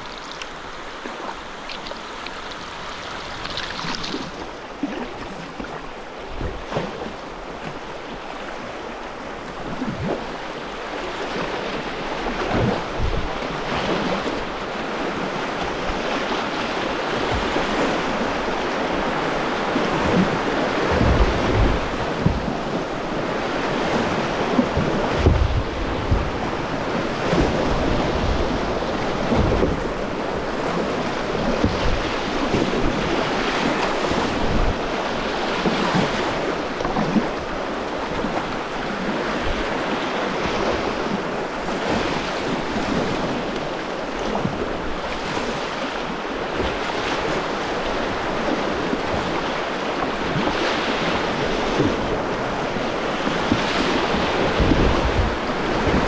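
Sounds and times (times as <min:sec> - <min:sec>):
wind buffeting microphone: 0:12.4 - 0:14.6, 0:15.2 - 0:56.0.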